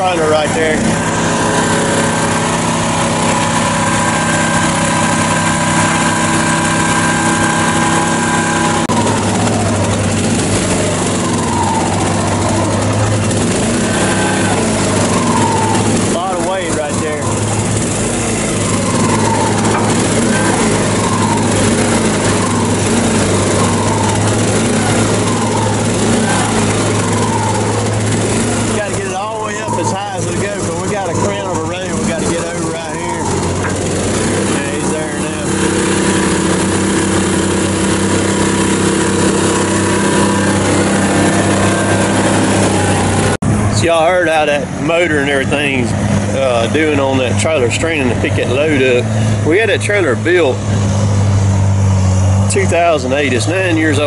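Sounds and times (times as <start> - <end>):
engine straining under load: 0.0 - 54.0.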